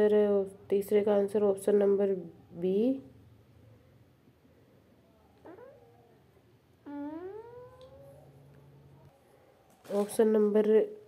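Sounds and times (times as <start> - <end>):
cat meowing: 5.4 - 6.1, 6.9 - 8.2.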